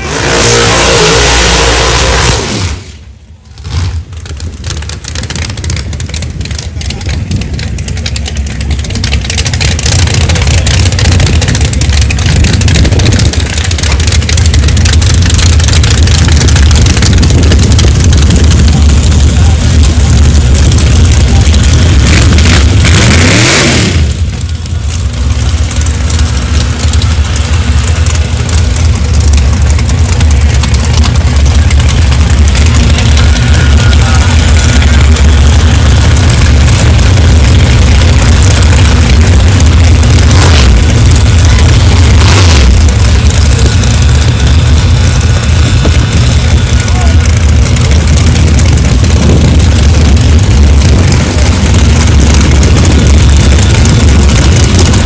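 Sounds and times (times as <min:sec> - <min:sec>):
drag car engine running loud: 0:00.0 - 0:55.0.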